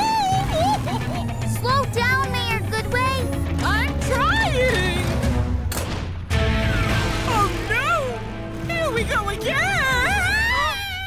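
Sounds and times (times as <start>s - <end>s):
action background music: 0.0s - 10.8s.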